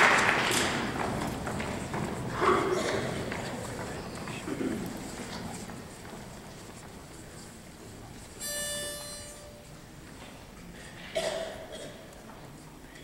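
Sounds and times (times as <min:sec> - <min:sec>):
faint hall ambience: 0:00.0 - 0:13.0
pitch pipe note: 0:08.4 - 0:09.8.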